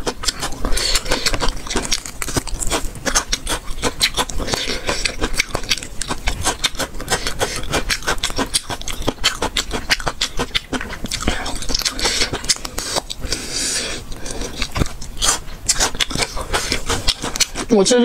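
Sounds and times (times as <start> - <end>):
crunchy chewing: 0.0 - 18.0.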